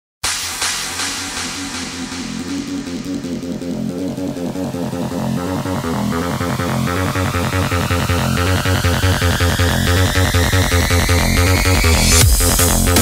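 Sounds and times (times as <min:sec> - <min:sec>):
electronic music with pulsing rhythm: 0:00.2 - 0:13.0.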